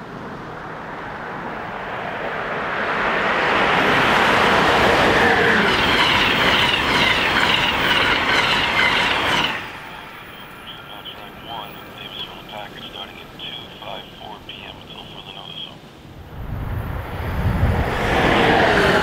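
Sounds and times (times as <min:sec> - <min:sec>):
passenger train passing: 0:00.0 - 0:19.0
high-pitched wheel noise: 0:03.7 - 0:10.8.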